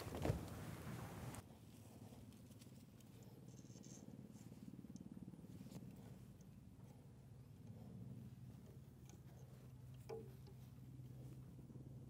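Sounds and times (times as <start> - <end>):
faint steady low hum: 0.0 - 12.0.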